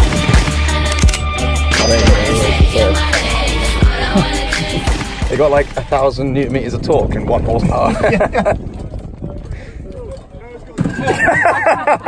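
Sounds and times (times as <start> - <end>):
men talking: 1.7 - 3.2, 4.0 - 8.5, 9.6 - 11.6
men laughing: 3.8 - 5.2, 7.6 - 8.9, 10.8 - 12.0.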